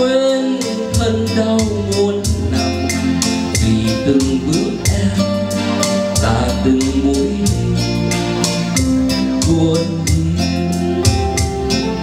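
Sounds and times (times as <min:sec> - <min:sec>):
electronic keyboard: 0:00.0 - 0:12.0
man singing a slow ballad: 0:00.0 - 0:12.0
strummed acoustic guitar: 0:00.0 - 0:12.0
steady beat: 0:00.6 - 0:12.0.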